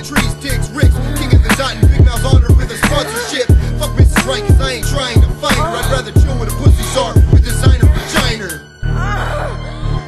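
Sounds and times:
rapping over a beat: 0.0 - 8.7
deep punchy kick drums: 0.2 - 8.1.

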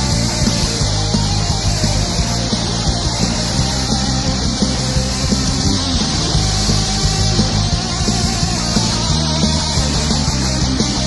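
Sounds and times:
loud rock band music: 0.0 - 11.0
steady drum beat: 0.0 - 11.0.

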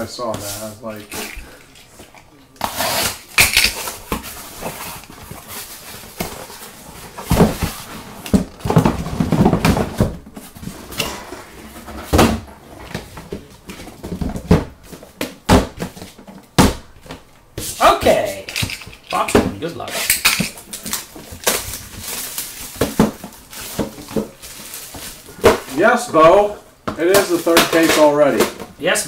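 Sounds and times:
cardboard rubbing and scraping: 2.6 - 3.3
boxes thumping on a table: 6.1 - 10.7, 11.8 - 17.8, 20.3 - 28.8.

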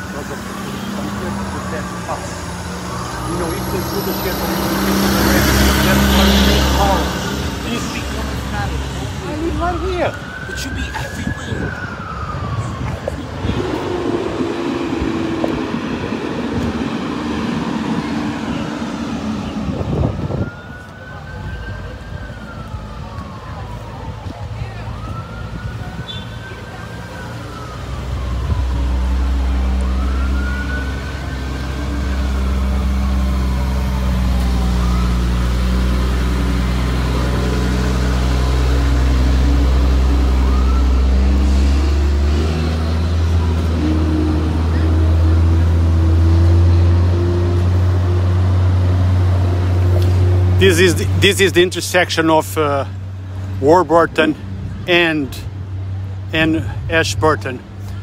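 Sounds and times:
emergency vehicle siren wailing: 0.0 - 57.8.

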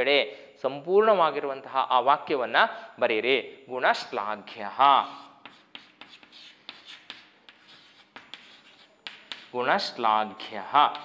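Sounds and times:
chalk tapping and scratching: 5.0 - 9.7, 10.4 - 11.0.

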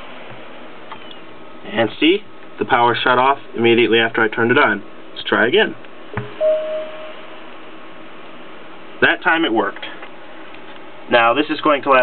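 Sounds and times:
laptop power-on beep: 6.2 - 7.2.

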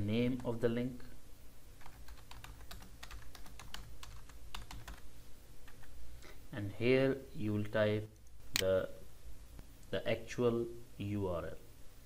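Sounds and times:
computer keyboard typing: 1.8 - 5.9.

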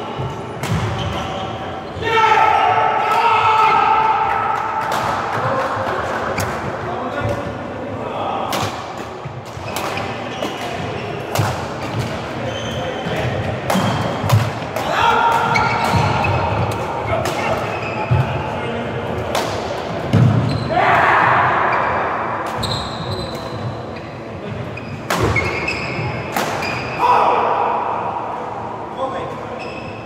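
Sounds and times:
shoe squeaks: 12.4 - 13.1, 17.4 - 18.2, 22.6 - 27.0, 29.5 - 30.0.

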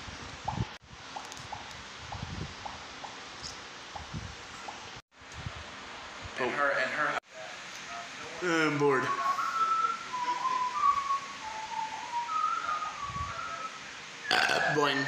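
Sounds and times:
person whistling a tune: 9.0 - 13.8.

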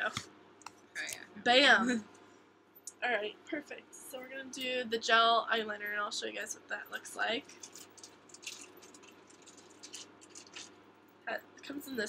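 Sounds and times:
low room hum: 0.0 - 12.0
faint rustling of small box: 7.4 - 10.9.

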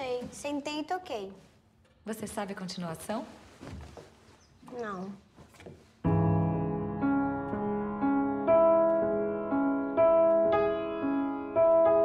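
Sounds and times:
piano chord ringing: 6.1 - 12.0.

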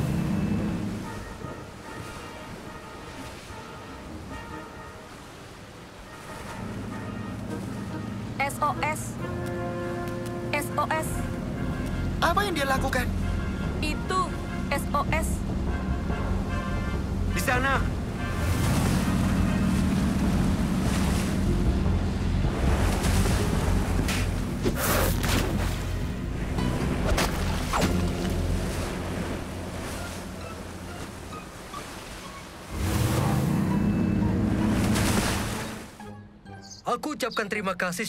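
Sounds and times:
motorboat engine running: 0.0 - 3.0, 6.1 - 36.0
sea waves: 0.0 - 36.5
background music: 0.0 - 38.0.

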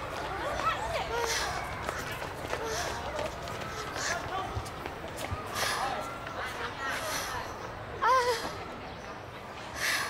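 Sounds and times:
running footsteps: 0.0 - 6.4
indistinct voices chattering: 0.0 - 10.0.

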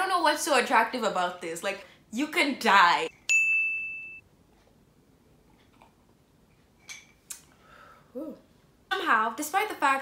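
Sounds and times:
bright ding: 3.2 - 4.2.

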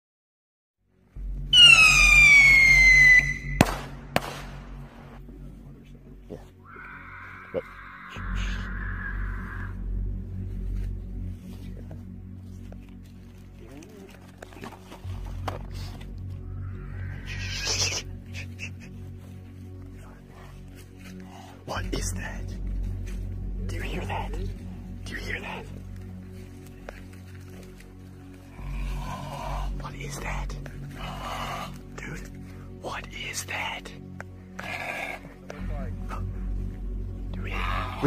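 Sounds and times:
low steady drone: 0.9 - 38.0
whistling firework shrieking: 1.6 - 3.6
sharp bangs: 3.4 - 5.0.

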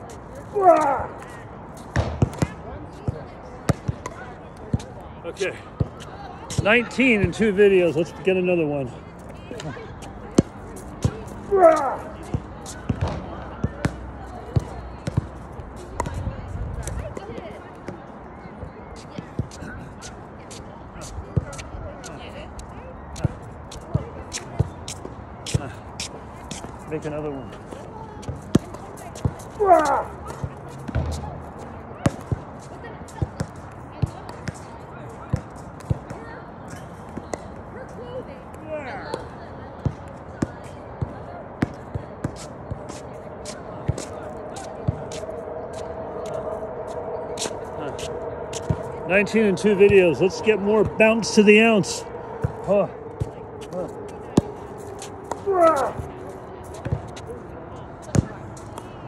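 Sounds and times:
steady hum: 43.3 - 58.8.

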